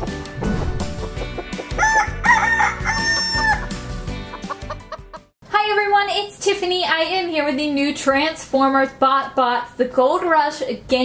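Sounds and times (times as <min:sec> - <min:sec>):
upbeat jingle music: 0:00.1 - 0:02.6
cartoon chicken clucking and crowing: 0:01.2 - 0:03.8
woman talking: 0:05.5 - 0:11.0.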